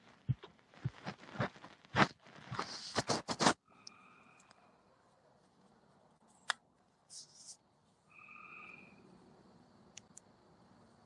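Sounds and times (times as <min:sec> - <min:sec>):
faint steady tone: 0:03.6 - 0:11.0.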